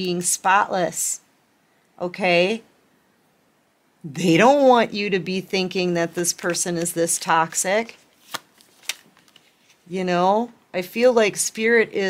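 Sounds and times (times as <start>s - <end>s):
cards being shuffled: 6.2s - 7.2s, 7.8s - 9.9s
card snaps: 8.2s - 9.4s.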